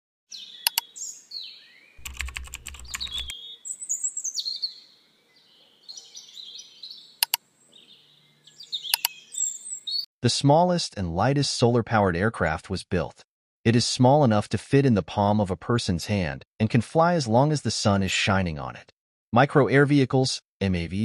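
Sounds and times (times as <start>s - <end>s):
high chirping: 0.3s - 4.8s, 5.6s - 10.1s
sharp mouse-like clicks: 0.7s - 0.9s, 2.0s - 3.3s, 7.2s - 7.4s, 8.9s - 9.2s
typing-like clicks: 2.0s - 3.3s, 8.9s - 9.2s.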